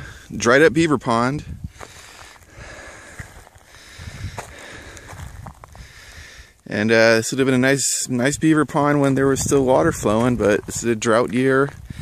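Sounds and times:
wind rumble on microphone: 0.0s - 1.9s, 2.5s - 6.4s, 8.2s - 12.0s
footsteps on dry mud: 1.7s - 6.4s, 8.7s - 12.0s.

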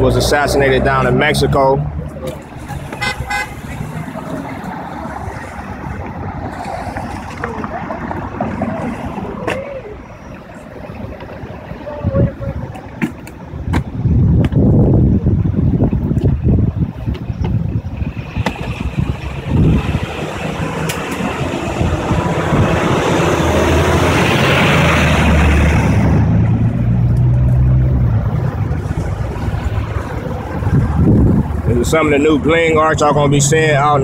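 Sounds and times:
vehicle passing: 0.0s - 11.8s, 18.0s - 34.0s
street traffic: 0.0s - 34.0s
wind buffeting microphone: 2.0s - 34.0s.

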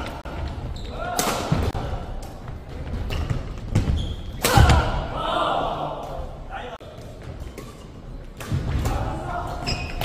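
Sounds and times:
shoe squeaks: 3.1s - 4.4s, 9.6s - 10.0s.

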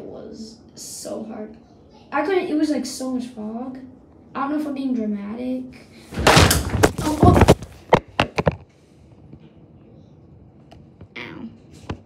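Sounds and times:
sharp knocks: 6.2s - 8.5s.

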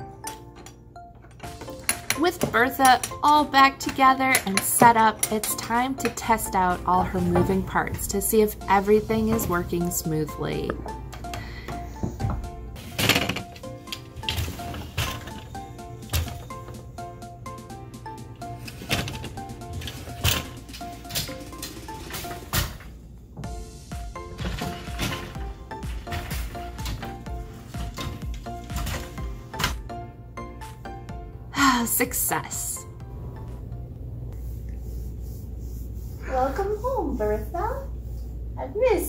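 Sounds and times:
background music: 0.0s - 39.0s.

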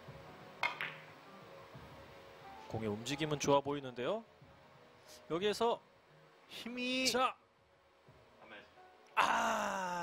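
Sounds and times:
billiard balls clicking: 0.6s - 1.1s.

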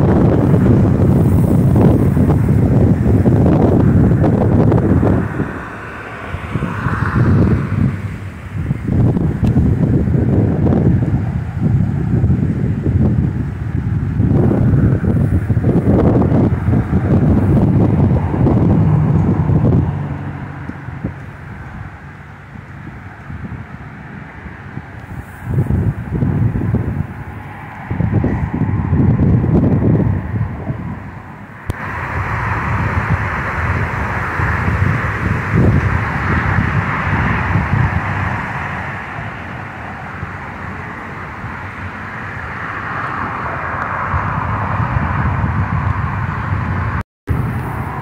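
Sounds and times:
jet airliner passing: 0.0s - 48.0s
wind buffeting microphone: 0.0s - 48.0s.

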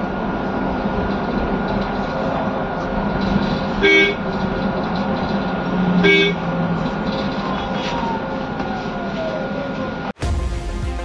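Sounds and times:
bus running noise: 0.0s - 10.2s
vehicle horn toot: 3.8s - 4.2s, 6.0s - 6.4s.

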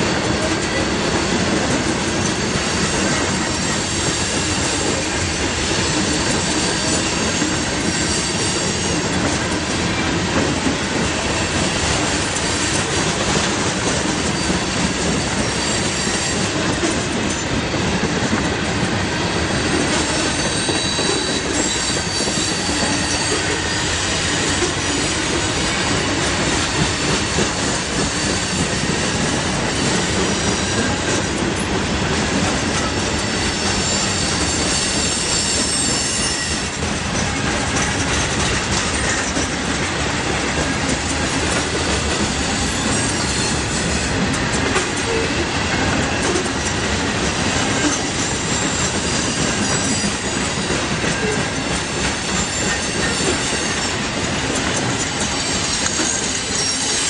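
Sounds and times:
freight train rumble and clatter: 0.0s - 57.0s
high wheel squeal: 5.8s - 9.2s, 14.2s - 16.7s, 19.2s - 31.1s, 32.8s - 38.2s, 42.2s - 44.2s, 47.8s - 54.0s, 55.0s - 57.0s.

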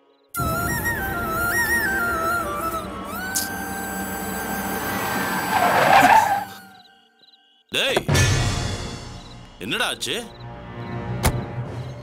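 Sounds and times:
car driving and braking: 3.4s - 6.6s.

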